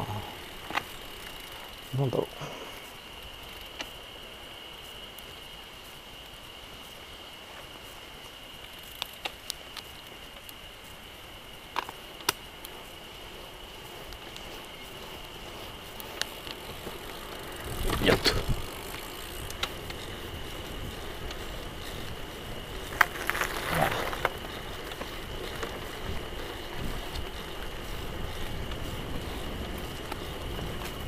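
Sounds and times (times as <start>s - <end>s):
bicycle tyre road noise: 0.0s - 31.0s
wind on microphone: 17.6s - 24.5s.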